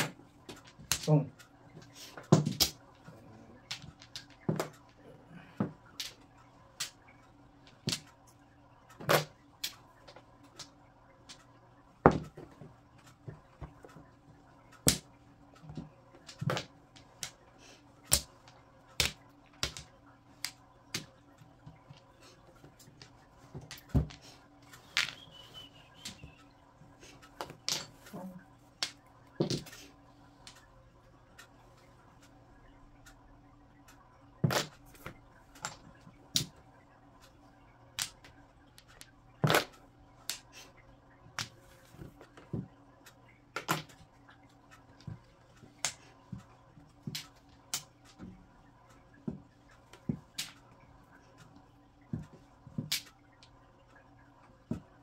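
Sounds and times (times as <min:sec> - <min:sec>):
faint steady hum: 0:00.0 - 0:55.0.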